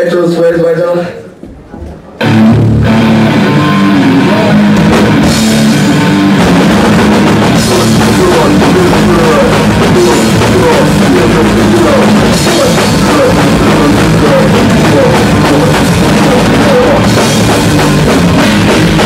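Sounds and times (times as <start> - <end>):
hardcore band playing live: 2.2 - 19.0.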